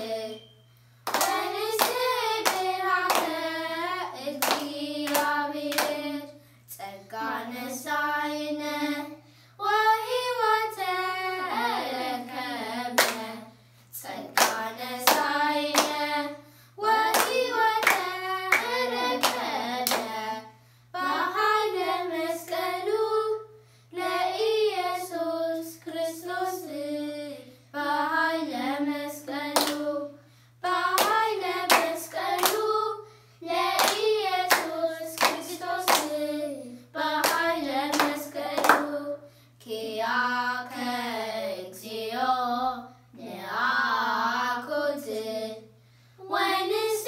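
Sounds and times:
children singing unaccompanied: 0.0 - 0.5, 1.1 - 23.4, 24.0 - 45.6, 46.2 - 47.0
hand claps: 1.1 - 3.4, 4.4 - 6.0, 13.0 - 13.2, 14.4 - 16.0, 17.1 - 20.1, 29.6 - 29.8, 31.0 - 32.6, 33.8 - 36.2, 37.2 - 38.9.

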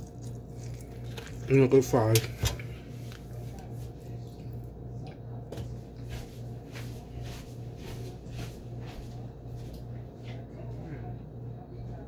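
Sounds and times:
person chewing crunchy food: 0.0 - 1.9
steady low hum: 0.0 - 12.0.

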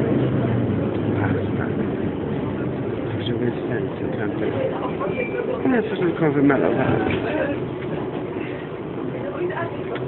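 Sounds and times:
low engine hum: 0.0 - 10.0
road noise: 0.0 - 10.0.

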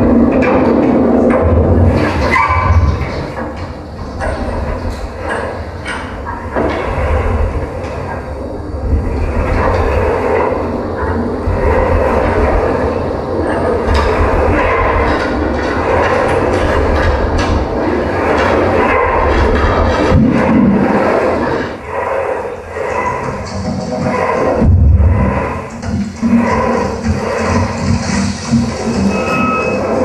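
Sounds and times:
experimental noise music: 0.0 - 30.0.

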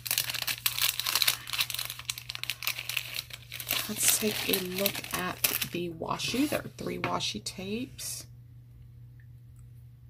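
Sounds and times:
plastic packaging crinkling: 0.0 - 6.8.

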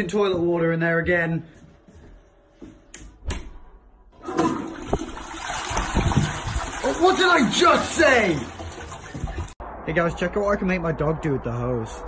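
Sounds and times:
toilet flushing: 4.2 - 9.6.

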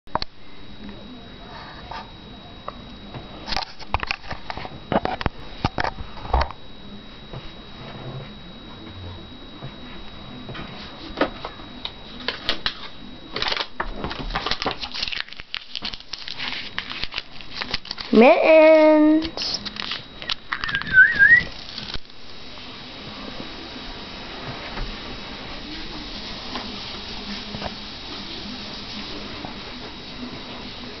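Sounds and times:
person whistling wavering note: 20.5 - 21.5.

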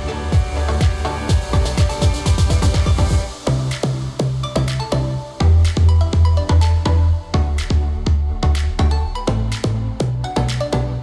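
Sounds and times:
electronic music with driving beat: 0.0 - 11.0.

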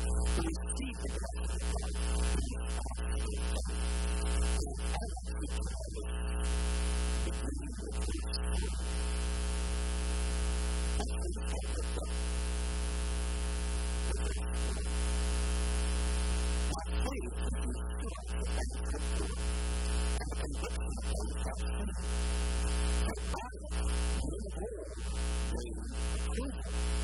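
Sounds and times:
faint man's voice: 0.0 - 6.2, 7.2 - 9.2, 11.0 - 12.2, 14.1 - 14.9, 16.7 - 19.4, 20.2 - 22.1, 23.0 - 26.8.

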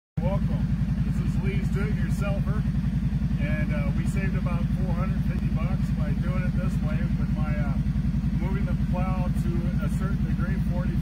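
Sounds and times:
atv engine idling: 0.2 - 11.0.

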